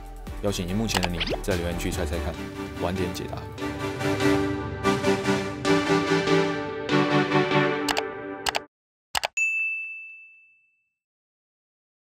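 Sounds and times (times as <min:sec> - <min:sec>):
quick clicks: 0:07.9 - 0:08.6
bright bell ding: 0:09.4 - 0:11.0.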